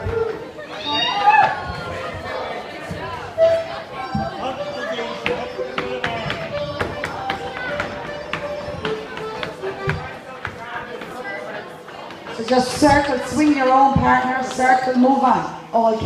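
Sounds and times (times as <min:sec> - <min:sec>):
folk dance band playing: 0:00.0 - 0:11.1
crowd voices: 0:00.0 - 0:16.0
feet tapping on wooden floor: 0:01.5 - 0:11.3.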